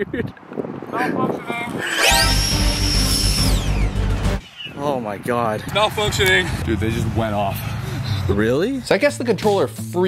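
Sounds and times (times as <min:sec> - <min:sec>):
ducted fan jets whining: 0:01.4 - 0:04.4.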